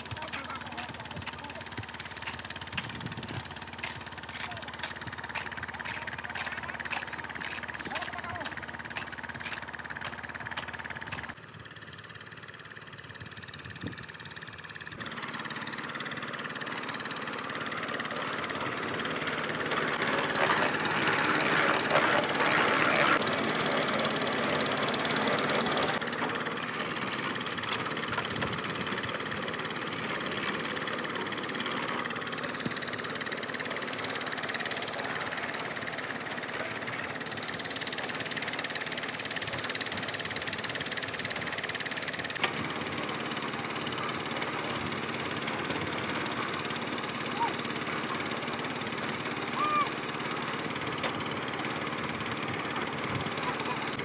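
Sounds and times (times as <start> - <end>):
concrete mixer engine running: 0.0 - 54.0.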